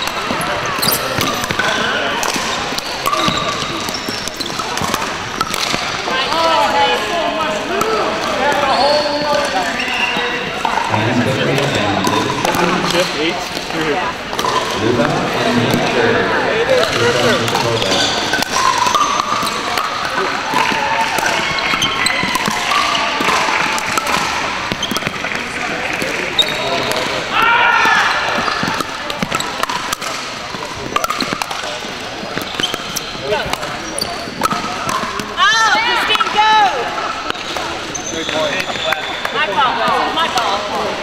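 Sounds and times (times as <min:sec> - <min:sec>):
shoe squeaks: 0:00.0 - 0:01.8, 0:02.5 - 0:04.9, 0:08.7 - 0:10.6, 0:17.2 - 0:19.7, 0:21.4 - 0:23.2, 0:24.7 - 0:25.2, 0:26.3 - 0:26.9, 0:28.4 - 0:29.6, 0:32.4 - 0:34.6, 0:37.2 - 0:39.7
players chatting: 0:00.0 - 0:41.0
ball popping off paddles: 0:00.1 - 0:06.1, 0:16.8 - 0:26.2, 0:27.9 - 0:35.4.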